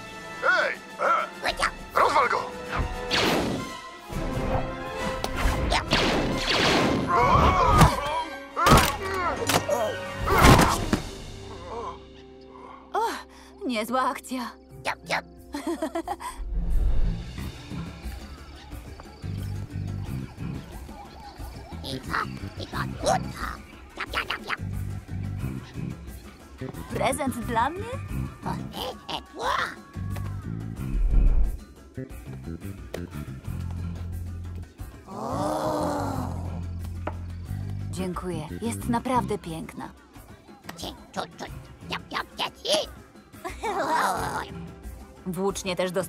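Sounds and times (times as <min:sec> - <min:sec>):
background music: 0:00.0 - 0:46.0
creature voices chattering: 0:18.3 - 0:24.8, 0:28.4 - 0:29.9, 0:40.8 - 0:44.5
high squeaky creature chatter: 0:21.7 - 0:24.6.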